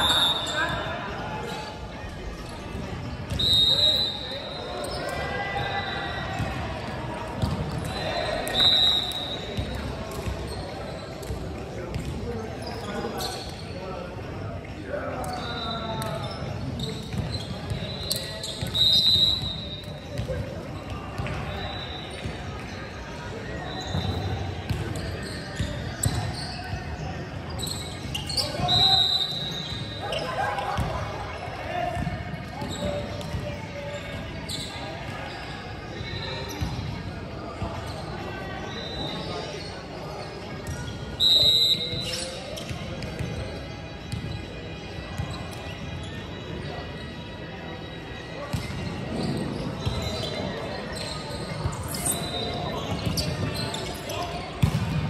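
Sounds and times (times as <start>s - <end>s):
players' voices and chatter: 0.0s - 55.0s
sneaker squeaks: 0.0s - 55.0s
balls bouncing on hardwood court: 7.3s - 7.8s, 32.0s - 33.5s, 54.6s - 55.0s.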